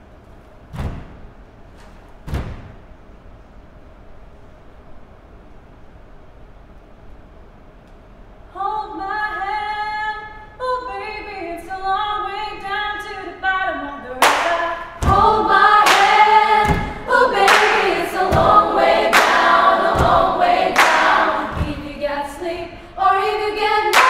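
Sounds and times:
female choir singing a cappella: 8.6s - 24.0s
clapping and low thumps beat: 14.2s - 21.9s.

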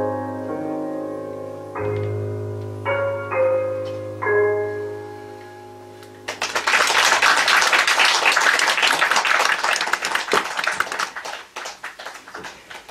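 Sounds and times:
small audience applauding: 6.3s - 12.9s.

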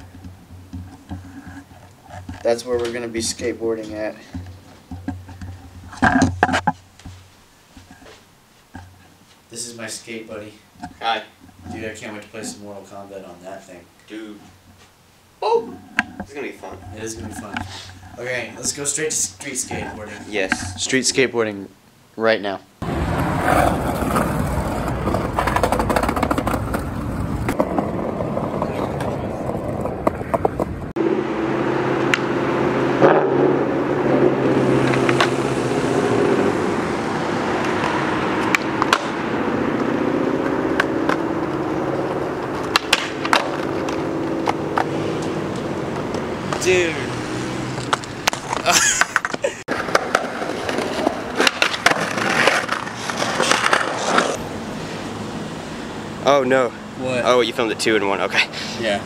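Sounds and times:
skateboard wheels rolling on concrete: 0.0s - 21.6s, 22.8s - 31.0s, 32.0s - 59.0s
skateboard clacking: 23.1s - 30.9s, 37.6s - 39.2s, 42.2s - 46.8s, 47.8s - 54.4s.

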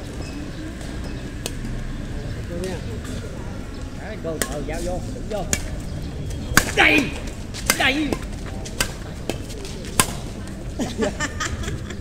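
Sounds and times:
rackets striking shuttlecock: 4.4s - 4.8s, 5.4s - 10.6s.

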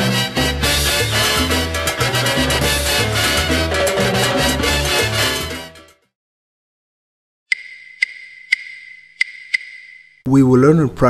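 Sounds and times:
sharp electronic ticks: 7.5s - 10.2s.

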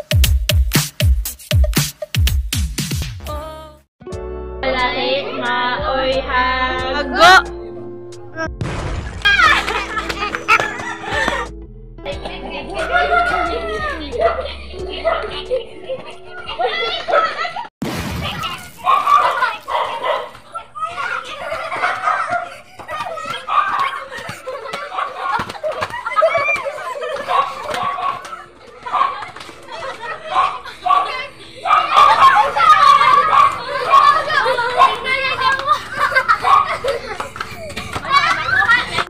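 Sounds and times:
children calling and shouting: 9.3s - 39.0s.

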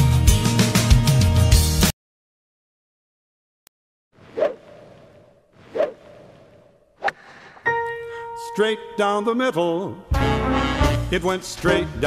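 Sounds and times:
quick whoosh: 4.3s - 7.6s.

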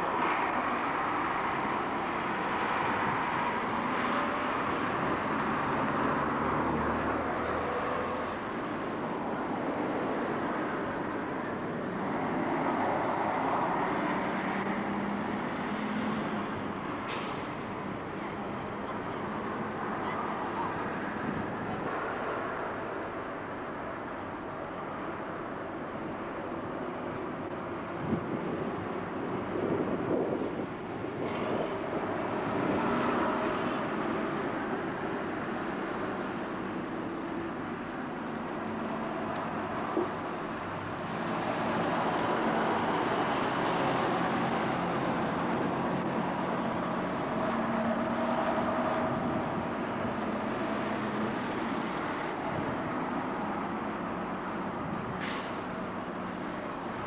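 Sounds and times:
bus diesel engine: 0.0s - 57.0s
street traffic: 0.0s - 57.0s.

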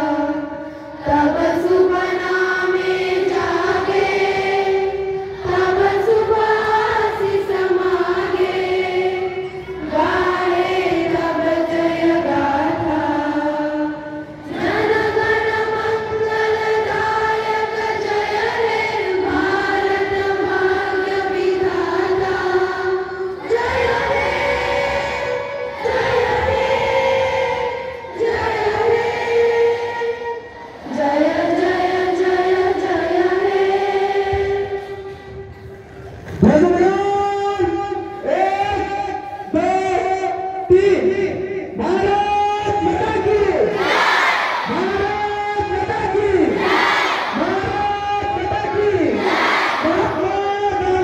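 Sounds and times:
group of students singing: 0.0s - 35.9s, 43.5s - 47.8s, 48.4s - 50.2s.

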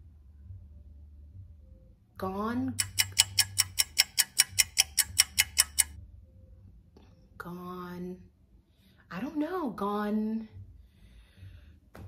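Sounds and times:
fast countdown timer ticking: 2.7s - 5.9s.

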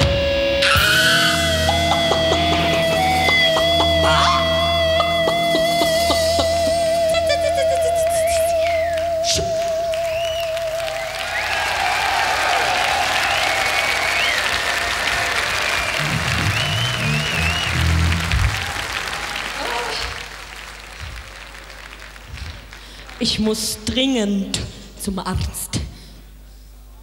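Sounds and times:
held vibrato note: 0.6s - 11.2s, 15.9s - 19.0s
crowd applauding and cheering: 0.6s - 23.7s.

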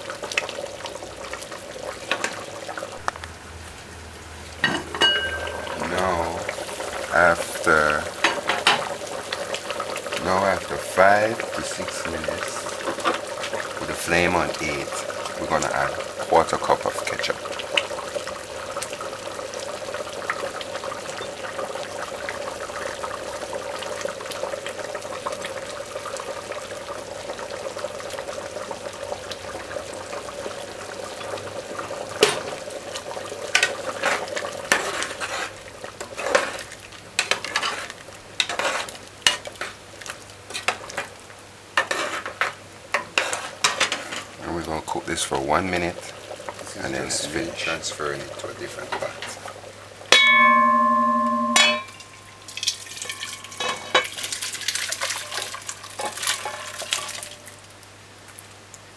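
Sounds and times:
stew bubbling in a pot: 0.0s - 58.9s
metal spoon scraping a pot: 37.3s - 39.6s, 41.8s - 42.5s.

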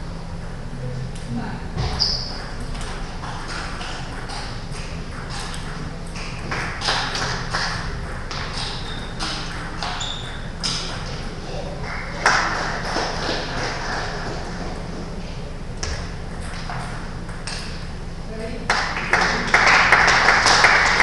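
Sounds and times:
table tennis balls clicking: 2.3s - 11.4s.

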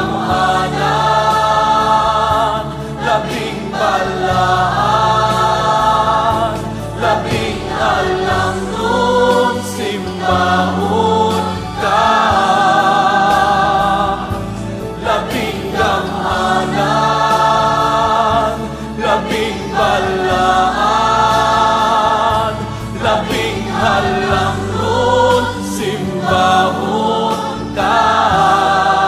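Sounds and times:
instrumental accompaniment: 0.0s - 29.0s
voices singing worship song: 0.0s - 29.0s.

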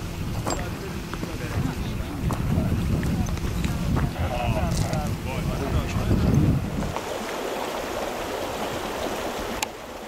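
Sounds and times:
wind rumbling on microphone: 0.0s - 10.0s
faint voices: 0.4s - 6.6s.

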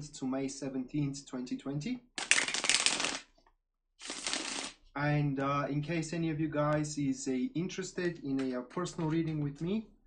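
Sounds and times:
cards being riffle-shuffled: 2.2s - 3.3s, 4.0s - 4.8s.

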